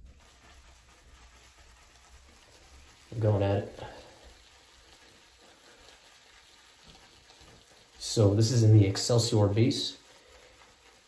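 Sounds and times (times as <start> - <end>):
shaving brush swishing on soap: 0.0 - 11.0.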